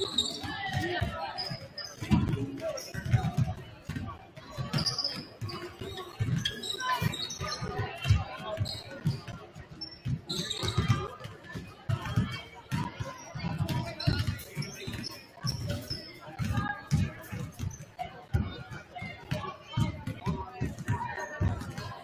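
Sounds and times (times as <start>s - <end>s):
basketballs bouncing on hardwood floor: 0.2s - 21.9s.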